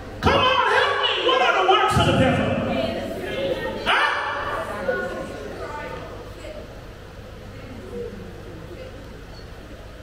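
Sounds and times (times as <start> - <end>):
man shouting exclamation: 0.2 - 2.2
man speaking over loudspeakers: 0.2 - 3.0.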